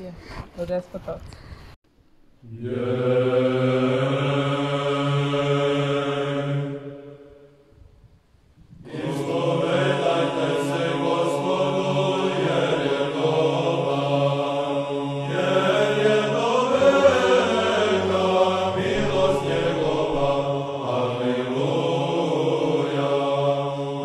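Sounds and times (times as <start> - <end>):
low drone: 2.2 - 7.7, 8.8 - 24.0
choir chanting sustained notes: 2.4 - 7.7, 8.8 - 24.0.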